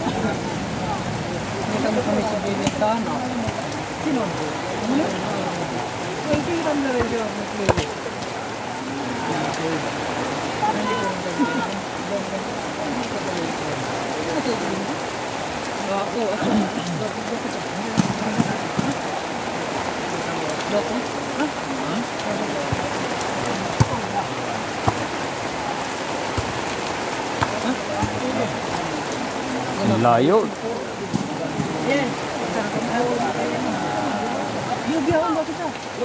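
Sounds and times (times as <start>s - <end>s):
rain falling on puddles: 0.0s - 36.0s.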